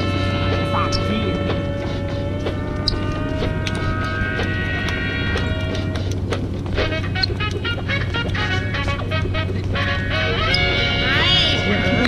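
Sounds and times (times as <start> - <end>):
breakdance music with steady beat: 0.0 - 12.0.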